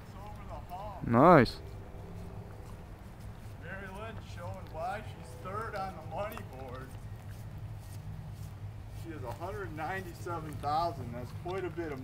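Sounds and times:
man speaking: 0.0s - 1.6s.

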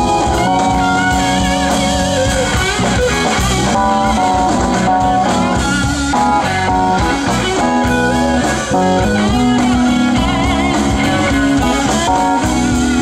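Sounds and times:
electric guitar lead: 0.0s - 13.0s
live blues band: 0.0s - 13.0s.

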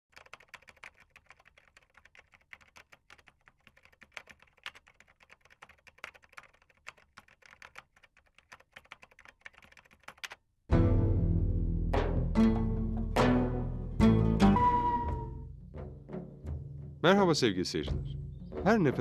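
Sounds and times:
keyboard typing clicks: 0.1s - 10.4s.

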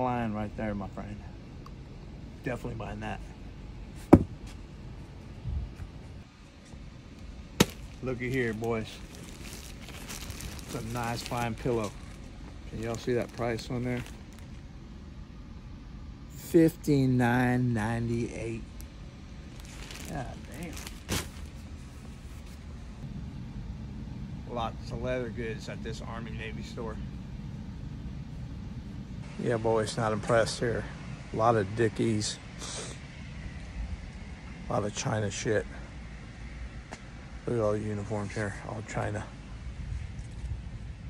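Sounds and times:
steady low rumble: 0.0s - 41.0s
dull thump: 4.1s - 4.4s.

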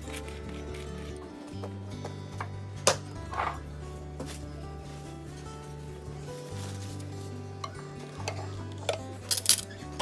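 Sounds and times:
background music of held notes: 0.0s - 10.0s.

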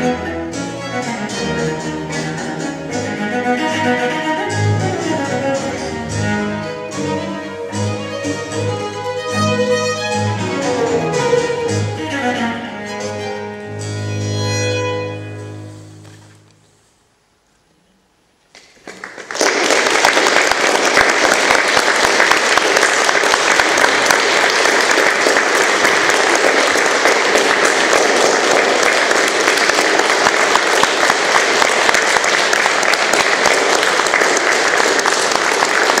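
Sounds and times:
audience applauding: 18.6s - 36.0s.

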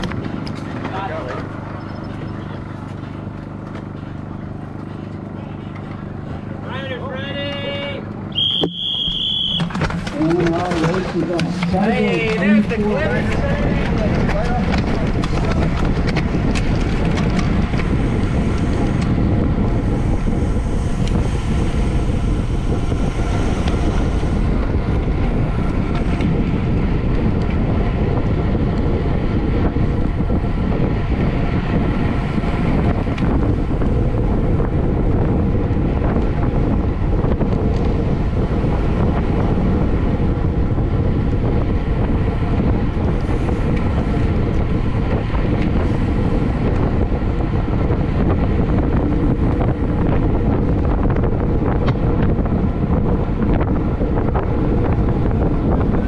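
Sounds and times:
road and riding noise: 0.0s - 56.0s
wind rushing over microphone: 0.0s - 56.0s.

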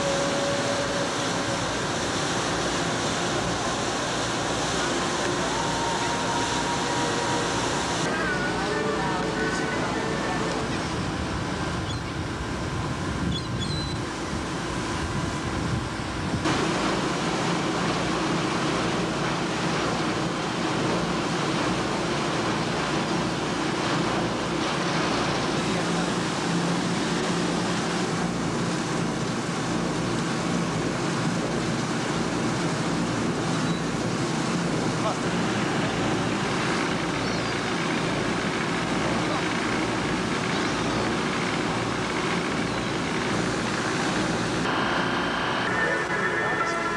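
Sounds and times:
water rushing: 0.0s - 13.2s, 16.4s - 46.9s
boat engine droning: 0.0s - 46.9s.

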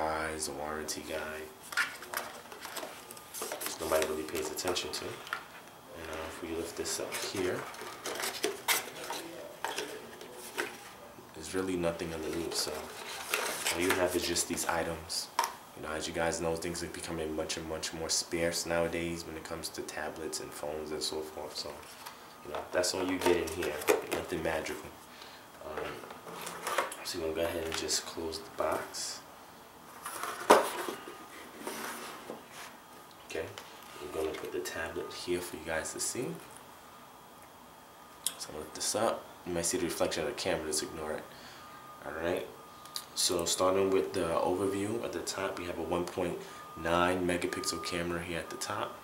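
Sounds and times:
cardboard rustling and sliding: 30.0s - 32.8s.

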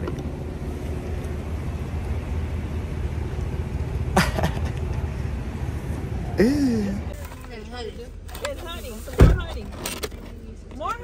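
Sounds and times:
car engine rumble from inside: 0.0s - 11.0s.

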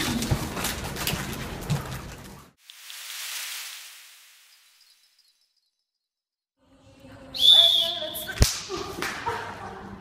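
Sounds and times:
whistle blast: 7.4s - 8.3s
sharp crack: 8.4s - 8.8s.

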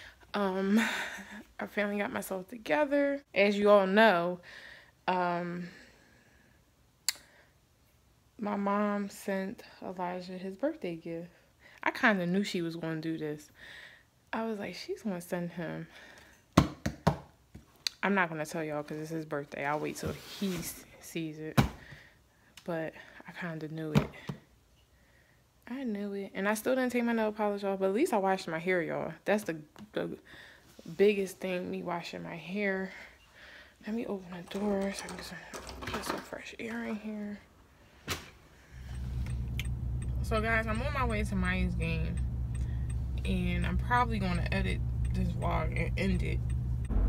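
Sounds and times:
car engine rumble from inside: 38.8s - 47.0s.

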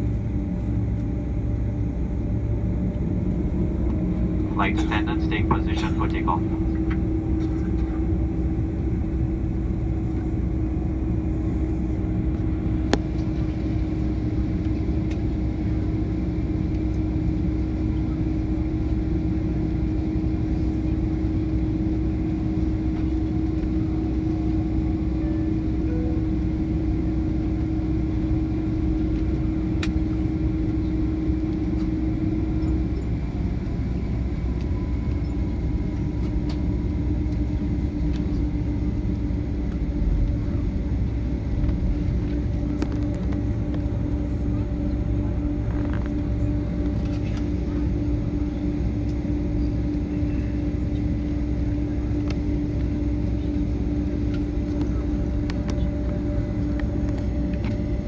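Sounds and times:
aircraft engine drone: 0.0s - 58.0s.

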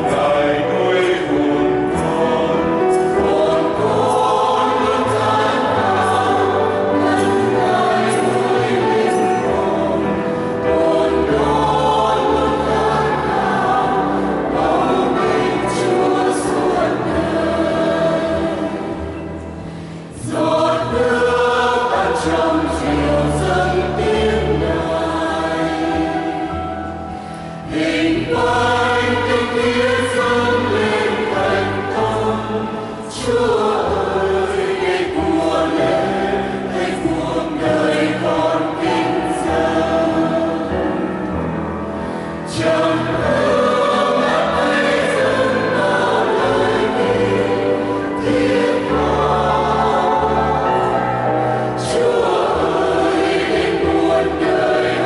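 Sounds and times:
mixed choir singing a hymn: 0.0s - 55.0s.

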